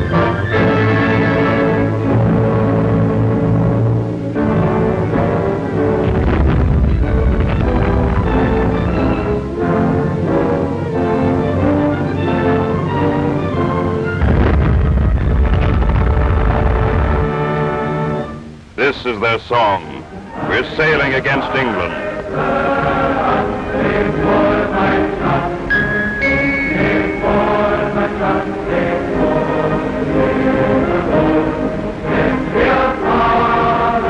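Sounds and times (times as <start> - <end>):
dramatic orchestral music: 0.0 - 18.5, 19.6 - 34.0
deep low rumble: 6.0 - 9.4, 14.2 - 17.6.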